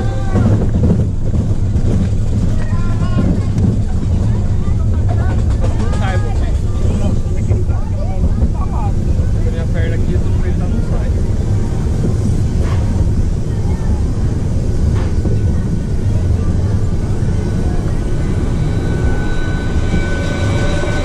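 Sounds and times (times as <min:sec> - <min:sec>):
roller coaster rumbling on track: 0:00.0 - 0:21.0
voices: 0:00.0 - 0:21.0.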